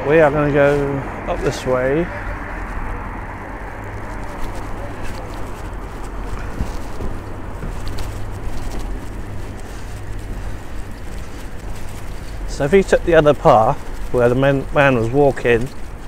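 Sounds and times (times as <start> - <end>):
tyres rolling on tarmac: 0.0 - 16.0
wind rushing over microphone: 0.0 - 16.0.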